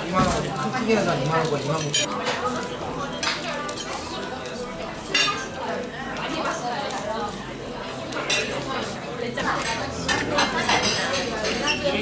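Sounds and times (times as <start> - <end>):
murmur of voices: 0.0 - 12.0.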